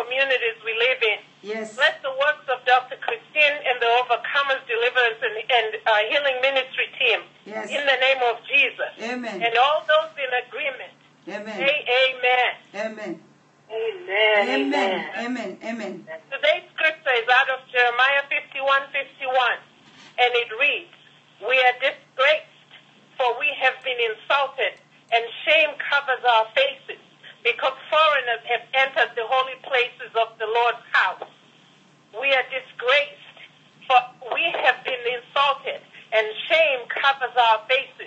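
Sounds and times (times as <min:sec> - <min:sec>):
person praying over a telephone: 0:00.0 - 0:16.5, 0:32.2 - 0:38.0.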